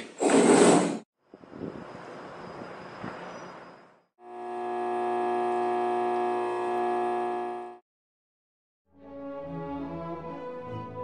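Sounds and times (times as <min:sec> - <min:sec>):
electrical cabinet humming: 0:04.4 - 0:07.8.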